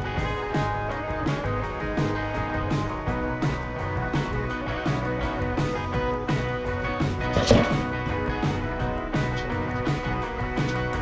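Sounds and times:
guitar music with steady beat: 0:00.0 - 0:11.0.

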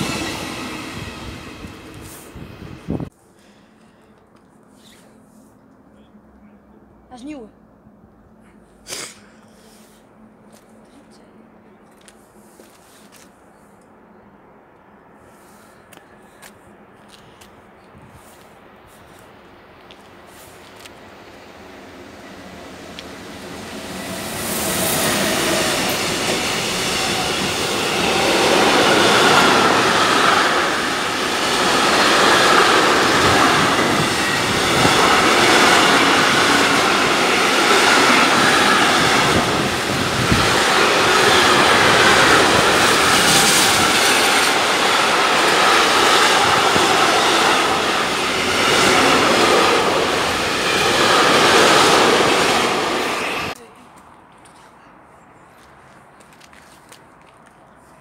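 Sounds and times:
freight train wagons rolling by: 0:00.0 - 0:03.1, 0:19.1 - 0:53.6.

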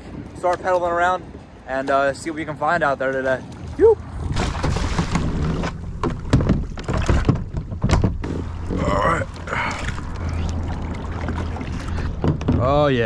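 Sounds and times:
steady low rumble: 0:04.0 - 0:13.0
short vocal sound: 0:08.6 - 0:10.5.

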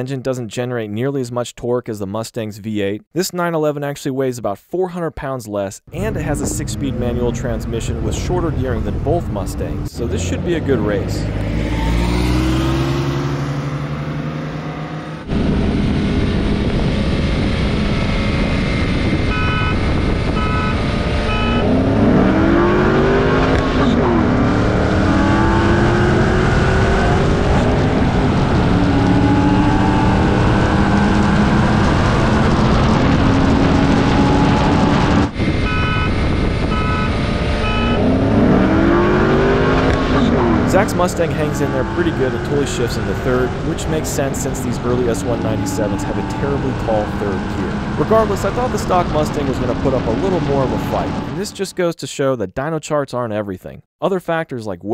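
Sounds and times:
car engines accelerating hard: 0:05.9 - 0:51.6
short beeps: 0:19.3 - 0:19.8, 0:20.4 - 0:21.7, 0:35.7 - 0:38.1.

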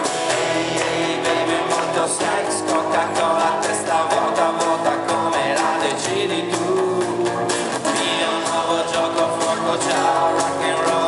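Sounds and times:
drum kit steady beat: 0:00.0 - 0:11.0
person singing: 0:00.0 - 0:11.0
strummed acoustic guitars: 0:00.0 - 0:11.0.

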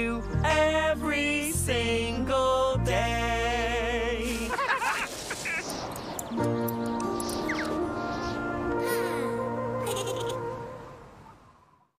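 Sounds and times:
noisy rustle: 0:04.1 - 0:08.6
held musical chord: 0:06.4 - 0:10.8
short squeaky calls: 0:09.8 - 0:10.4.

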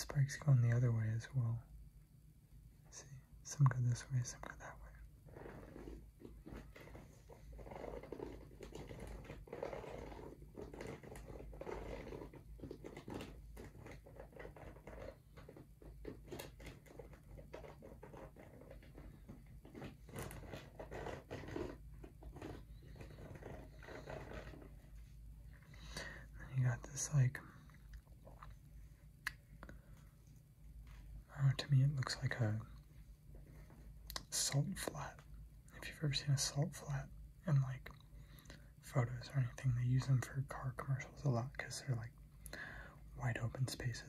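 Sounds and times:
fingertips scratching rubber sole: 0:05.2 - 0:25.1.

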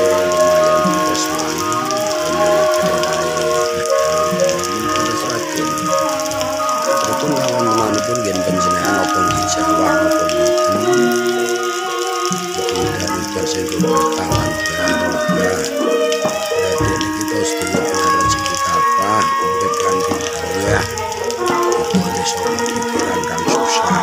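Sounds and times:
music of long held tones: 0:00.0 - 0:24.0
rain on leaves: 0:00.0 - 0:24.0.

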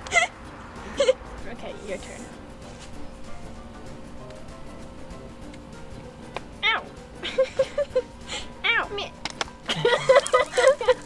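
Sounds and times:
girl giggling: 0:00.0 - 0:01.2, 0:09.7 - 0:11.0
girl yelping: 0:06.6 - 0:06.9, 0:08.6 - 0:09.0.

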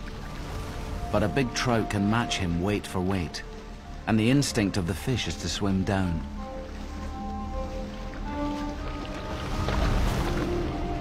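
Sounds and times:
background music with held notes: 0:00.0 - 0:11.0
wings splashing on water: 0:07.0 - 0:11.0.

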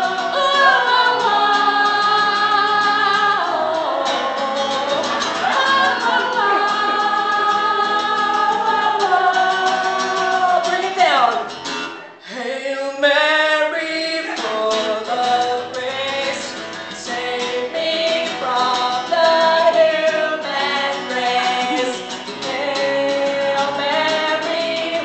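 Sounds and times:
woman singing: 0:00.0 - 0:11.5, 0:12.6 - 0:25.0
girl singing backup: 0:00.0 - 0:25.0
strummed acoustic guitar: 0:00.0 - 0:25.0.

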